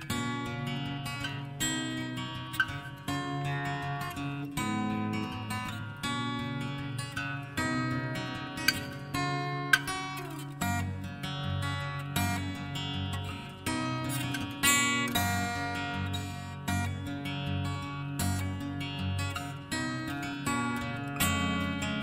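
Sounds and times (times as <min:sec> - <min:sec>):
acoustic guitar strumming chords: 0:00.0 - 0:22.0.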